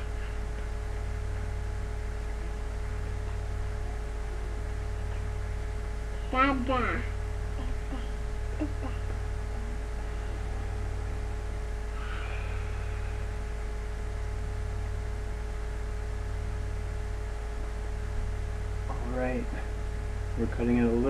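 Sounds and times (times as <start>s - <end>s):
low electrical hum: 0.0s - 21.0s.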